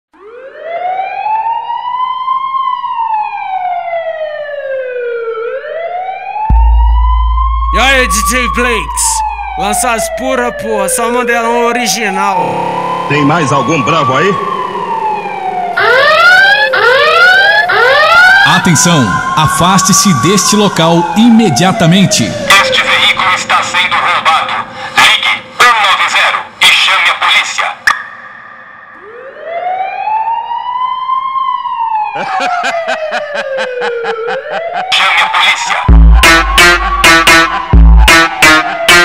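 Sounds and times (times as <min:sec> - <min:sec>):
siren wailing: 0:00.2 - 0:26.6, 0:27.8 - 0:39.0.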